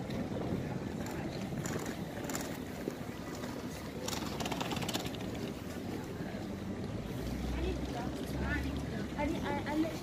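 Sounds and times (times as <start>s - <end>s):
wind buffeting microphone: 0.0s - 5.6s
indistinct voices of passers-by: 0.0s - 10.0s.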